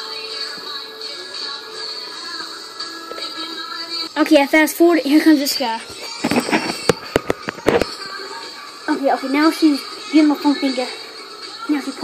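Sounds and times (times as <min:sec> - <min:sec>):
rubbing against microphone: 0:06.1 - 0:08.0.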